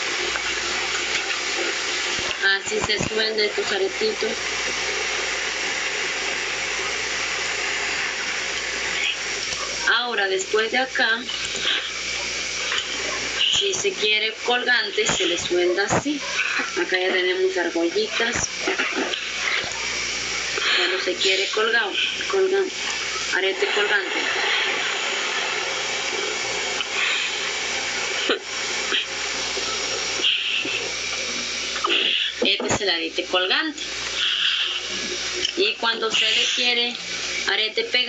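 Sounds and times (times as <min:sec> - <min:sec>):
gas torch hissing: 0:00.0 - 0:38.0.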